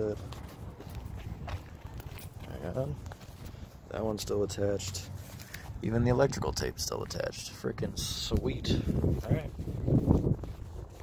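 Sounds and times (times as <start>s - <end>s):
footsteps on gravel: 0.0s - 6.0s.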